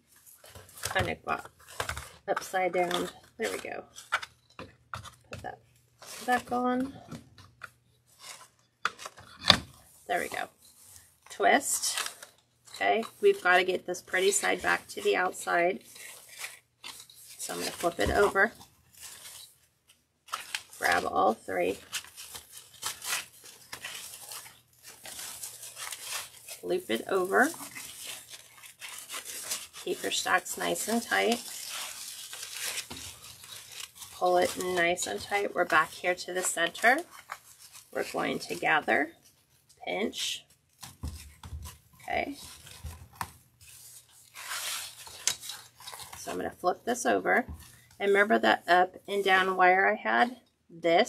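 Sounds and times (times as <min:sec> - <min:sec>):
ribbons rustling and crinkling: 0:00.0 - 0:50.7.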